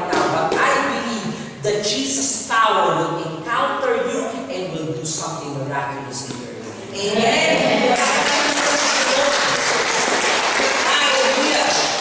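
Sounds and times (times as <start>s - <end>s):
crowd clapping: 7.5s - 12.0s.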